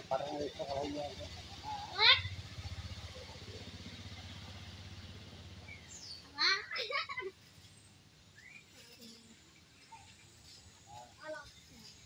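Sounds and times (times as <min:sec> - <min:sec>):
faint bird chirps: 0:07.6 - 0:12.0.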